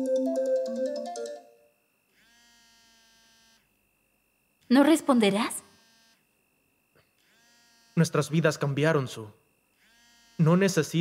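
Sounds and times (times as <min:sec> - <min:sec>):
mobile phone ringtone: 0:00.0 - 0:03.6
faint held musical tone: 0:00.0 - 0:11.0.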